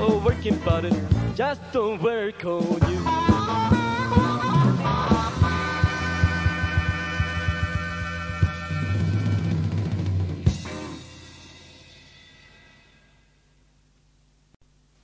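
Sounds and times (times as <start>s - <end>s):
electric blues band playing: 0.0s - 1.9s, 2.5s - 11.8s.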